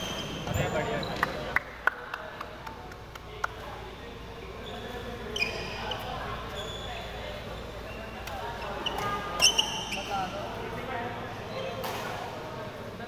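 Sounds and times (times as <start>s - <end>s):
shoes squeaking on wooden court: 0.0s - 1.5s, 4.5s - 10.6s
players chatting: 0.0s - 13.0s.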